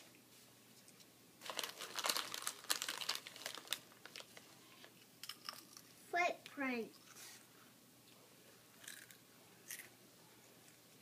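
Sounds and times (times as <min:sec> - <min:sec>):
paper rustling and crinkling: 0:01.4 - 0:04.5.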